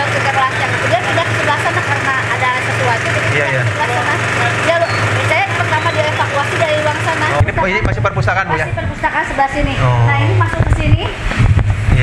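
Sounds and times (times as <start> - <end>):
people talking over one another: 0.0 - 11.2
low motor hum: 0.0 - 12.0.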